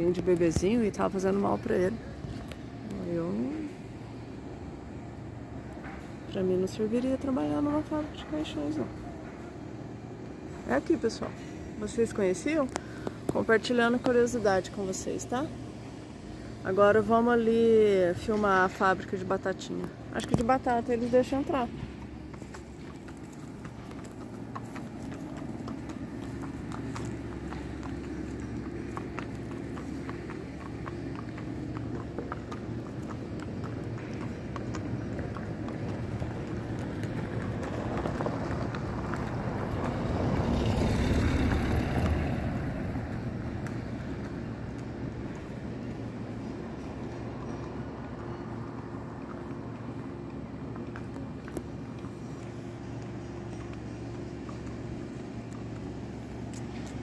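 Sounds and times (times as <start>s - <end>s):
low engine hum: 0.0s - 57.0s
vehicle passing: 20.6s - 45.8s.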